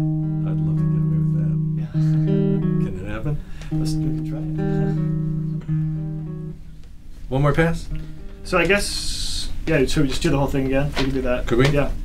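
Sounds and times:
acoustic guitar ringing notes: 0.0 - 9.4.

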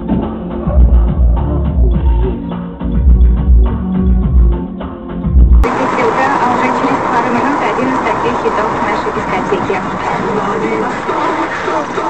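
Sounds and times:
bass-heavy music with a beat: 0.0 - 12.0
car road and engine noise: 5.6 - 12.0
person speaking: 5.6 - 12.0.

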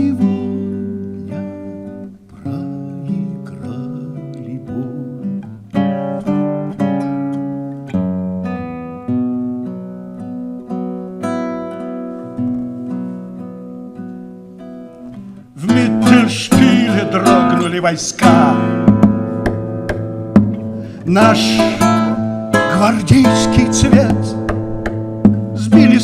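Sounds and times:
acoustic guitar: 0.0 - 26.0.

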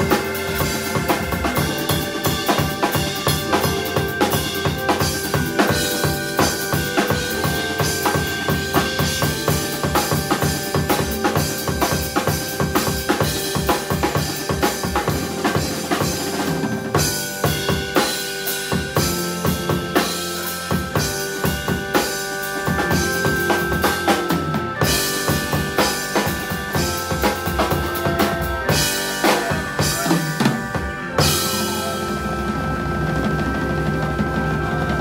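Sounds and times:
organ chords: 0.0 - 35.0
snare and bass drum playing: 0.0 - 35.0.

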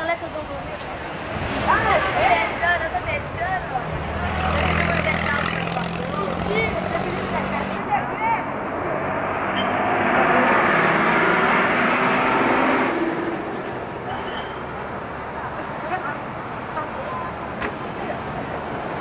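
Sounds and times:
indistinct voices: 0.0 - 19.0
street traffic: 0.0 - 19.0
vehicle engine humming: 0.4 - 19.0.

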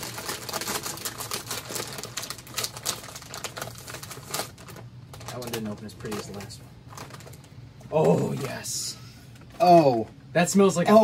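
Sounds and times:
plastic snack bag crinkling: 0.0 - 8.7.

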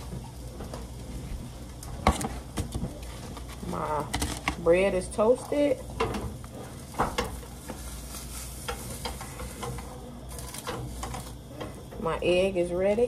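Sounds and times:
egg sizzling in a skillet: 0.0 - 11.9.

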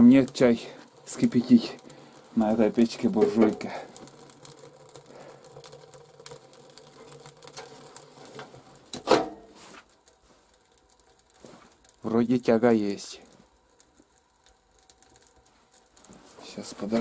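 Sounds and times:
firewood crackling in stove: 0.0 - 17.0
steel stove door clanking shut: 9.0 - 9.4.

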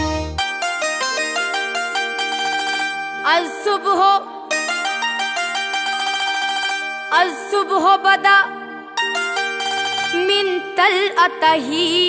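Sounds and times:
keyed banjo notes: 0.0 - 12.0
woman singing: 3.3 - 4.5, 7.1 - 8.9, 10.1 - 12.0.

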